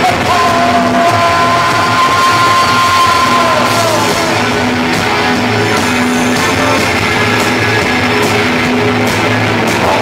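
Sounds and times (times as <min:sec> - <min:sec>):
vocalist holding long note: 0:00.0 - 0:07.5
rock band playing live: 0:00.0 - 0:10.0.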